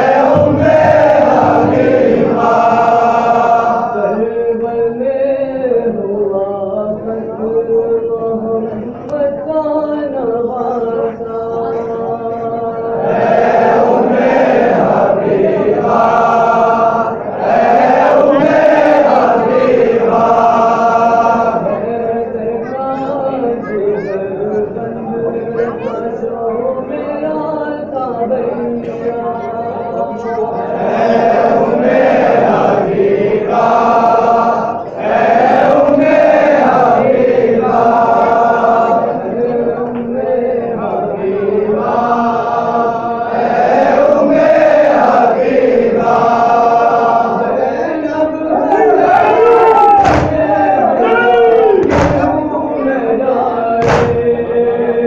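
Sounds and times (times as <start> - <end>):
men chanting a lament: 0.0 - 55.0.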